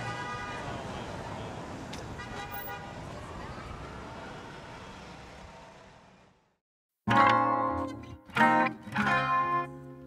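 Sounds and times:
street traffic noise: 0.0s - 6.6s.

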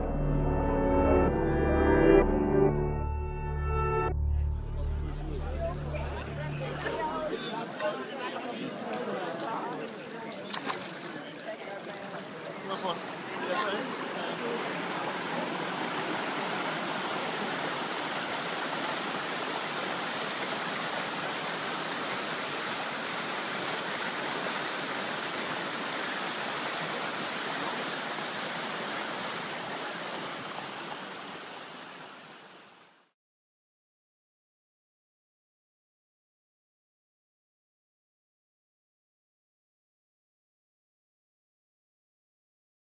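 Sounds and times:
flowing water rushing: 5.9s - 33.1s.

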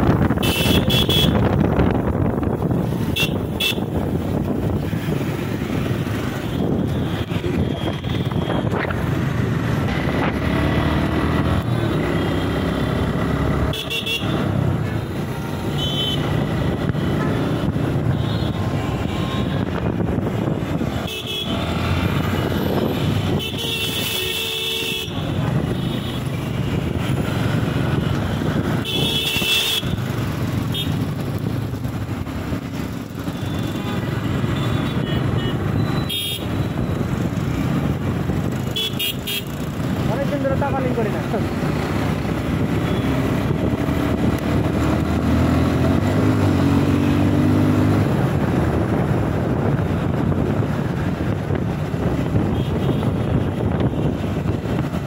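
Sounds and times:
motorcycle engine: 0.0s - 55.0s
horn toots: 0.4s - 1.5s.

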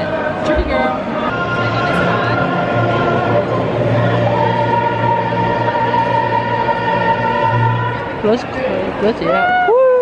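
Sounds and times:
choir singing long notes: 0.0s - 8.2s.

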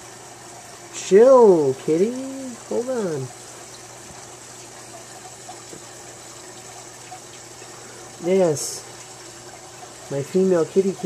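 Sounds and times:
bubbling water: 0.0s - 11.0s.

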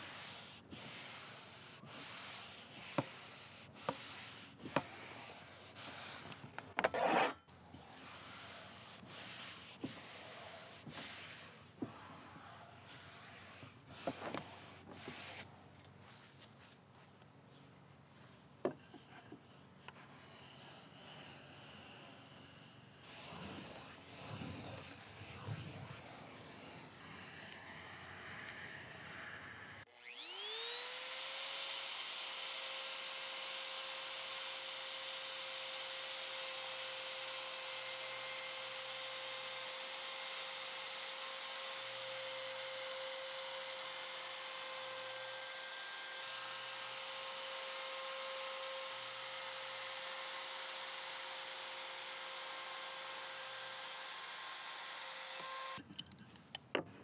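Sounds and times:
faint rubbing of veneer: 0.0s - 17.2s, 18.1s - 27.5s
trim router whining: 19.9s - 55.9s.

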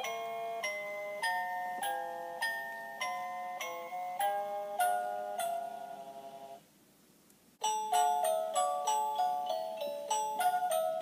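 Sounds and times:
music box bell melody: 0.0s - 6.6s, 7.6s - 11.0s.

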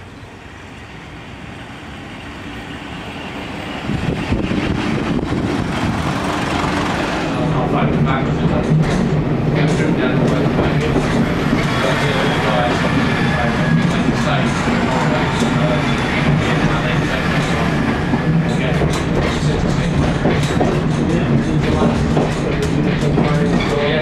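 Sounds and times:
wheels clacking over rail joints: 4.2s - 24.0s.

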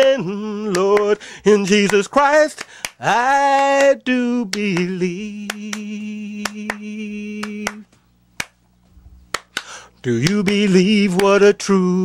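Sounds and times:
person singing gospel song: 0.0s - 8.0s, 9.4s - 12.0s
finger snaps: 0.7s - 1.2s, 2.6s - 8.7s, 9.3s - 11.5s.

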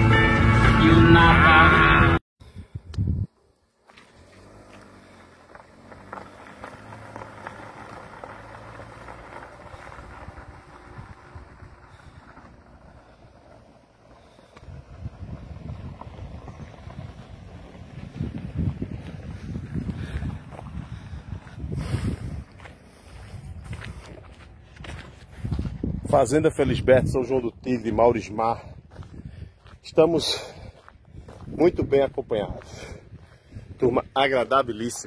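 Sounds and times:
rock song: 0.0s - 2.2s
wind buffeting microphone: 2.4s - 3.4s, 8.9s - 34.8s.

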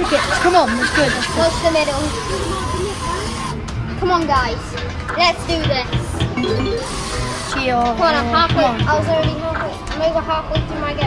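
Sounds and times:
arcade machines noise: 0.0s - 3.6s, 6.2s - 8.1s.

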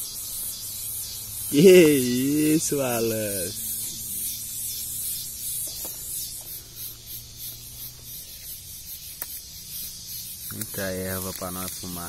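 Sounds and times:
steady high hiss: 0.0s - 12.0s
leafy branches rustling: 1.5s - 4.6s, 5.6s - 12.0s.

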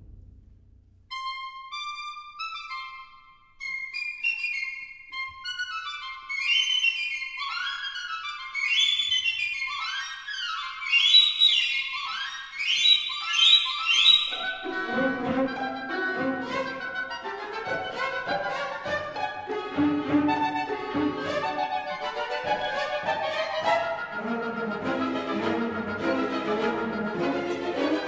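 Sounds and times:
solo flute playing: 1.1s - 28.0s
low orchestral instruments: 14.3s - 28.0s.

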